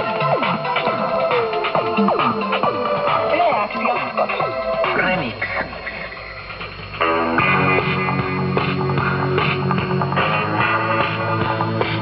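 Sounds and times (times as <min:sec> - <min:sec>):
radio tuning whistles: 0:00.1 - 0:08.8
broadcast voice on radio: 0:03.2 - 0:06.1.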